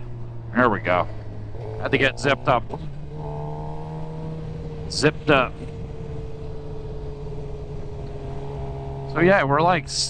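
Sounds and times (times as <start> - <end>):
motorcycle engine cruising: 0.0 - 10.0
wind rumbling on microphone: 2.8 - 9.2.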